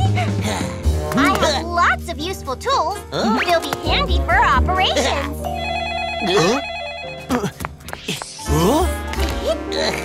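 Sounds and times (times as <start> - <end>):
telephone ringing: 5.4 - 7.3.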